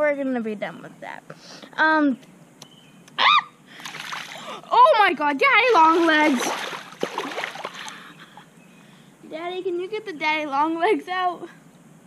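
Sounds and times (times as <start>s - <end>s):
pool water splashing: 3.7s - 8.4s.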